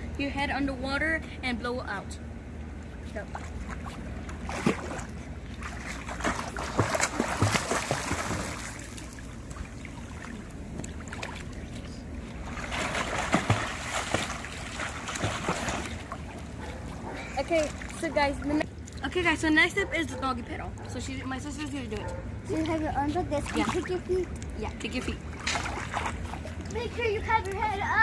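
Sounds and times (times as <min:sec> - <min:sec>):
pool water splashing: 0:02.6 - 0:28.0.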